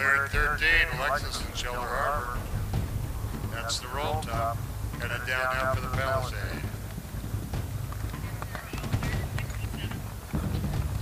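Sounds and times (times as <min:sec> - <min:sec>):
horse galloping on grass: 0:00.3 - 0:11.0
low steady rumble: 0:00.3 - 0:11.0.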